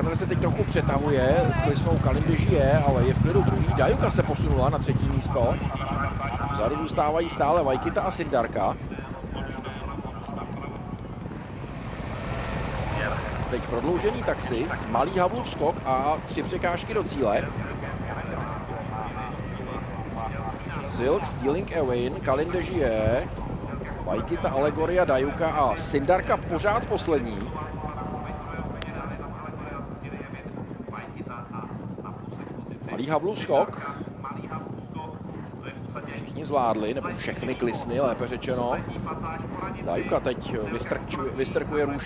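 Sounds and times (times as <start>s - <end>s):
low rumble: 0.0s - 32.9s
horses galloping on turf: 0.0s - 42.0s
wind on microphone: 0.0s - 42.0s.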